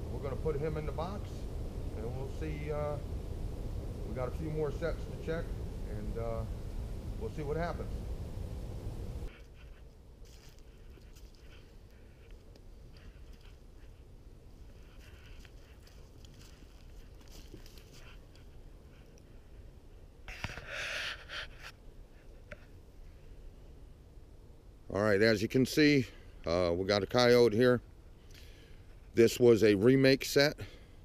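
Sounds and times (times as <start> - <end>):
low steady rumble: 0.0 - 20.3
rustling in dry leaves: 9.2 - 19.2.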